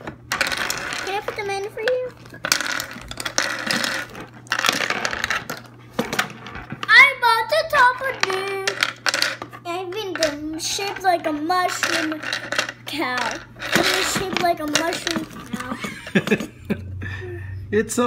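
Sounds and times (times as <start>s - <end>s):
plastic pieces clattering: 0.0s - 7.0s, 7.7s - 16.5s.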